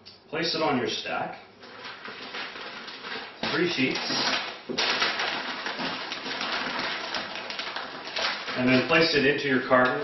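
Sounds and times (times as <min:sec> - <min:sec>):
packing paper rustling and crinkling: 0:01.6 - 0:09.4.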